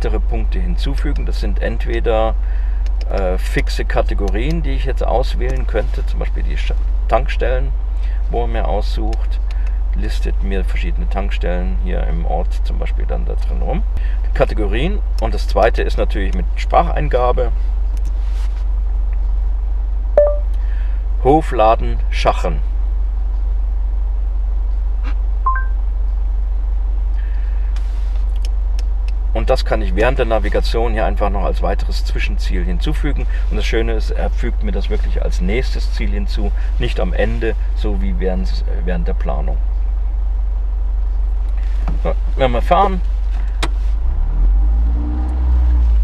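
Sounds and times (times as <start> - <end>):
car engine idling: 0.0 - 46.0
rising two-note beep: 20.2 - 20.5, 25.5 - 25.8
car engine pulling away: 41.4 - 46.0.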